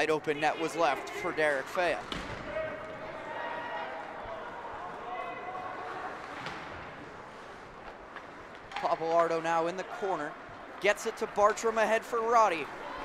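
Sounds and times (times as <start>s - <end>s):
indistinct voices echoing in arena: 0.0s - 13.0s.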